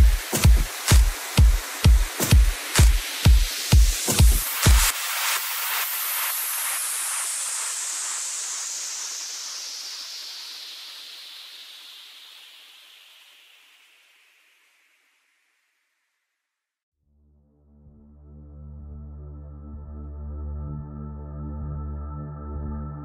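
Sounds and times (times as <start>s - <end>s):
white-noise sweep falling in pitch: 0.0s - 14.4s.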